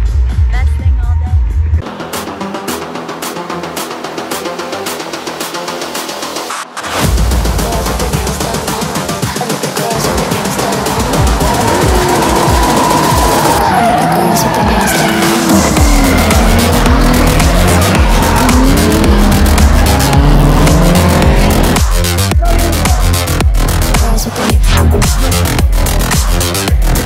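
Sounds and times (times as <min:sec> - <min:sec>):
electronic music with a beat: 0:00.0 - 0:27.0
car engines revving: 0:10.0 - 0:27.0.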